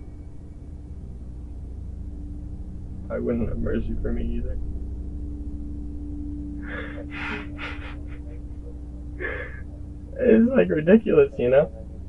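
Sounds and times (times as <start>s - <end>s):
low hum inside car: 0.0s - 12.0s
man crying with gasping breaths: 6.6s - 9.7s.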